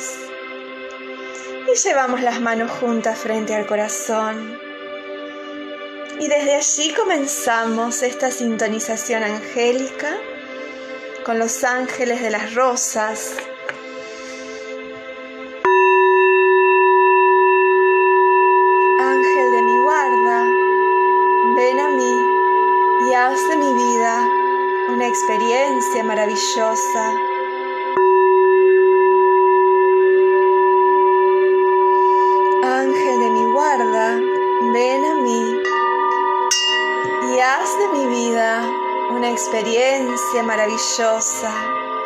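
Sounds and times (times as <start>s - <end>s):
singing bowl ringing: 0.0s - 14.8s, 15.4s - 42.0s
soft meditation music: 0.0s - 42.0s.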